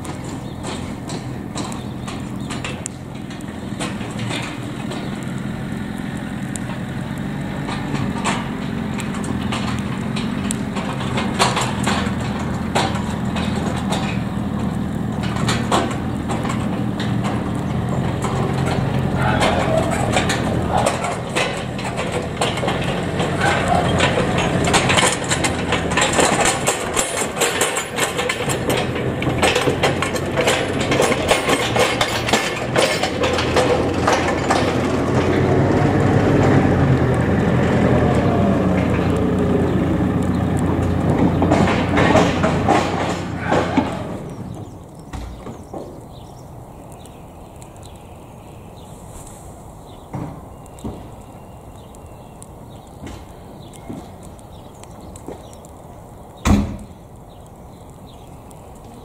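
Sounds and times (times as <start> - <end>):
telehandler engine running: 0.0 - 48.9
burning straw crackling and popping: 0.0 - 59.0.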